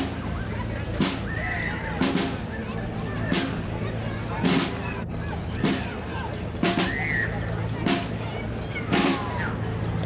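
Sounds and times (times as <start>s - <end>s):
crowd voices: 0.0s - 10.0s
drum beating slowly: 0.0s - 10.0s.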